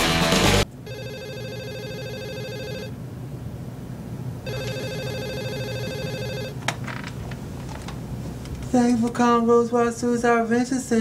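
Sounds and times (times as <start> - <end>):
desk telephone ringing: 0.8 - 3.0, 4.4 - 6.7.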